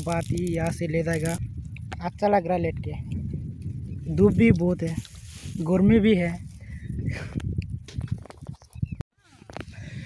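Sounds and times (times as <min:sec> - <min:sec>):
maize kernels rattling: 0:00.0 - 0:01.4.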